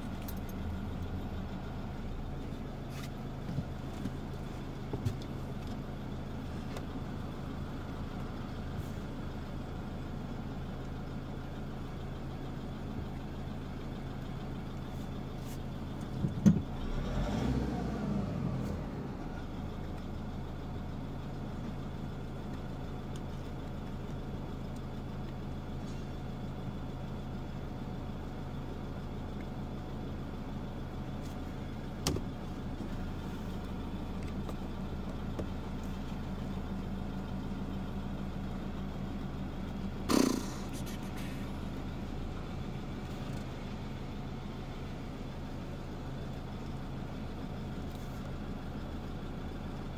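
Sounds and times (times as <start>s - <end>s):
car engine idling: 0.0s - 49.9s
engine rumble: 0.0s - 49.9s.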